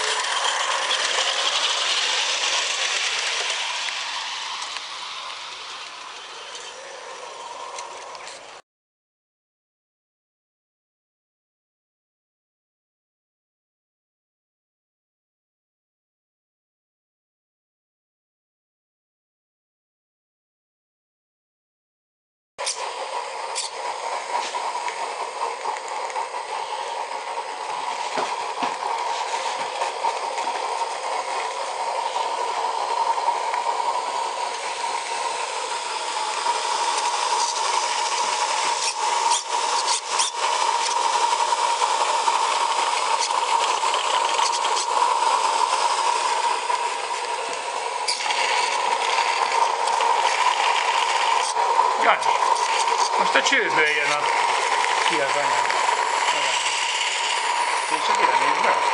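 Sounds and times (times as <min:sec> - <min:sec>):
steam locomotive hissing: 0:00.0 - 0:08.6, 0:22.6 - 0:58.9.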